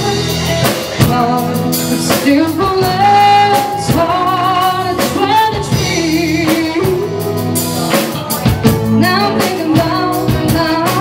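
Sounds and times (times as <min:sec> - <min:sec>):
rock band playing: 0:00.0 - 0:11.0
woman singing: 0:00.0 - 0:11.0.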